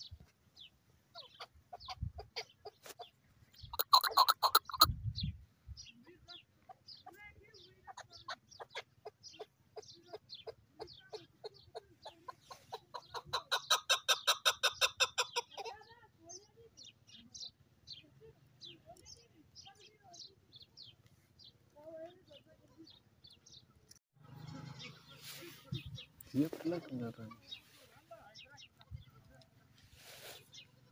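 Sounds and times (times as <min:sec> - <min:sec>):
partridge clucking calls: 0:01.1 - 0:05.0, 0:06.5 - 0:16.0, 0:24.3 - 0:30.7.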